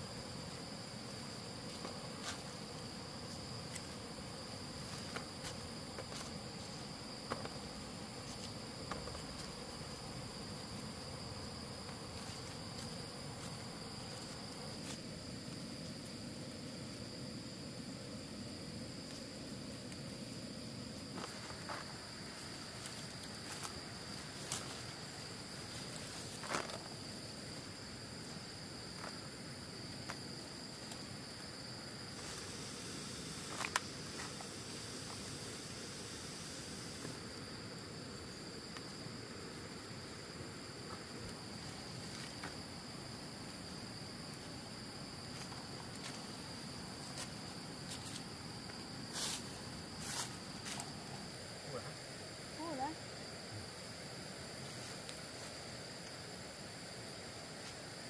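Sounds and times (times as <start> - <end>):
high-pitched insect chorus: 0.0 - 58.0.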